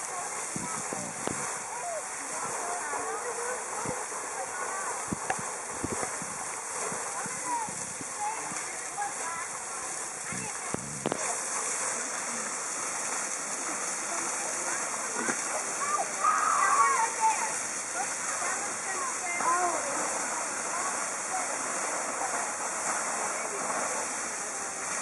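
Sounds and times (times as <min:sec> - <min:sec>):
geyser water rushing and splashing: 0:00.0 - 0:25.0
people's voices: 0:00.0 - 0:25.0.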